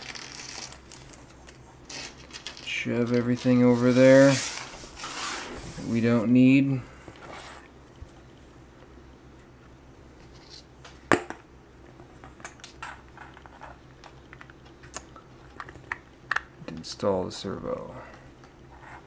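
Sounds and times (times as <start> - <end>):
faint steady hum: 0.0 - 19.0.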